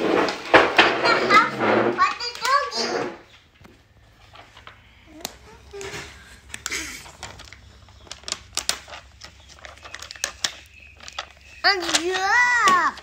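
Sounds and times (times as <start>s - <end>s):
child's voice: 1.0s - 3.2s, 5.1s - 6.2s, 11.6s - 13.0s
plastic sheet crinkling: 4.0s - 13.0s.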